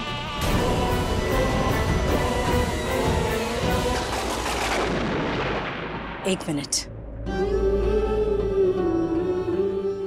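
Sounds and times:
background music: 0.0 - 5.2, 6.3 - 10.0.

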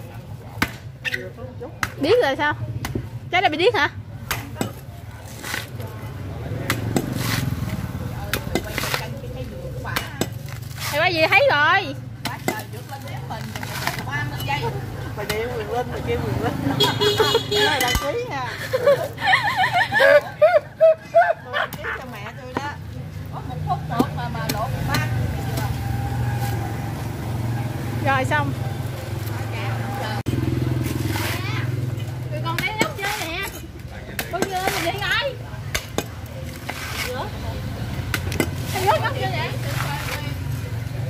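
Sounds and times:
blade chopping coconut husk: 0.4 - 2.2, 4.2 - 11.5, 12.2 - 14.4, 15.1 - 15.7, 30.7 - 40.5.

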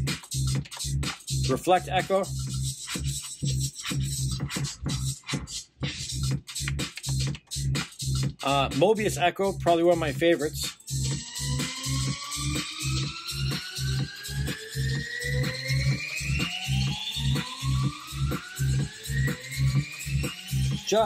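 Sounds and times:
electronic dance kick beat: 0.0 - 21.0
endlessly rising tones: 10.8 - 21.0.

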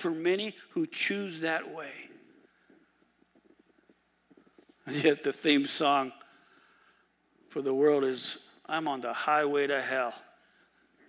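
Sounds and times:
man talking: 0.0 - 2.3, 4.8 - 6.4, 7.5 - 10.4.

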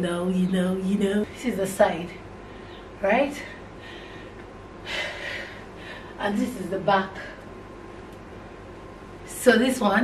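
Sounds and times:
woman breathing: 2.4 - 6.2.

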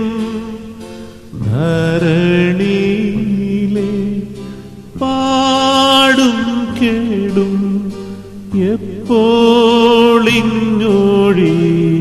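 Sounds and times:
musical accompaniment: 0.0 - 12.0.

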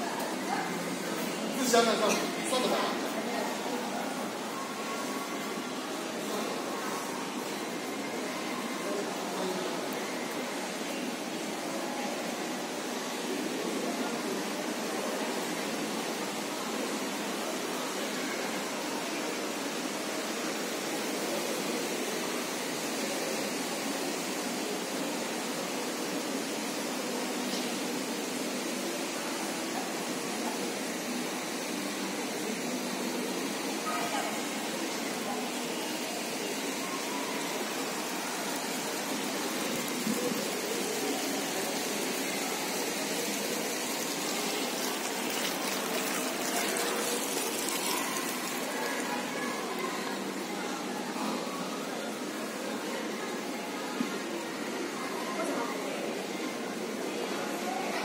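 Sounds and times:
faint indistinct voices: 0.0 - 58.0.

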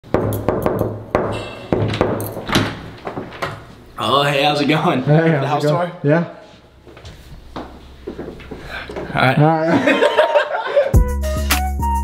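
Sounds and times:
music: 10.9 - 12.0.

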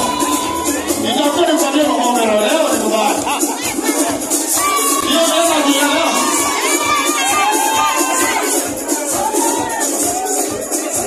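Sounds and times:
crowd cheering and shouting: 0.0 - 11.0
dance music with steady beat: 0.0 - 11.0.

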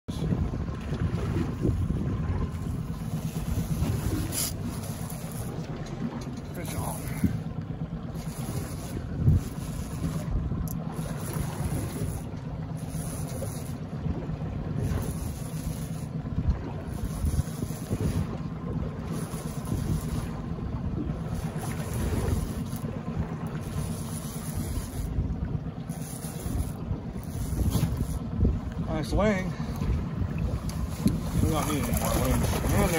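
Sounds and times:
wind buffeting microphone: 0.1 - 32.9.

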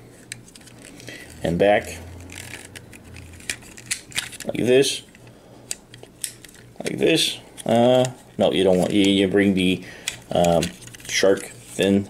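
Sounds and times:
plastic toy parts clicking: 2.2 - 4.5, 10.0 - 11.5.

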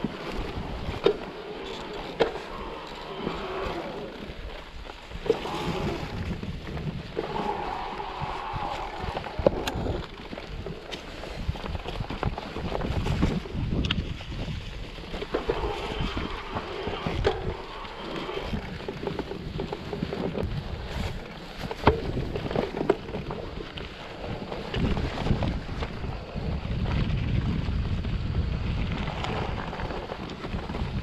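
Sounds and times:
bike tyres rolling over dirt: 0.0 - 31.0
wind on microphone: 0.0 - 31.0
bike knocking on rocks: 18.6 - 26.0.

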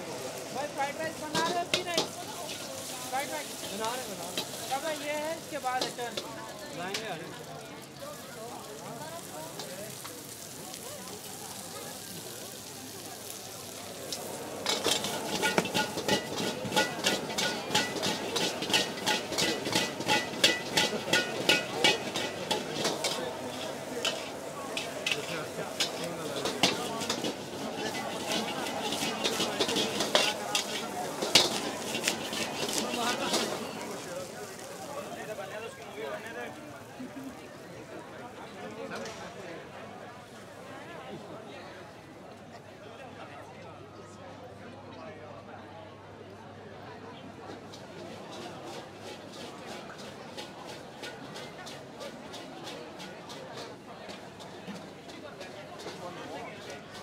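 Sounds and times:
hot oil sizzling: 0.0 - 39.2, 47.5 - 57.0
spatula scraping a wok: 0.4 - 6.3, 14.0 - 34.7, 47.5 - 57.0.

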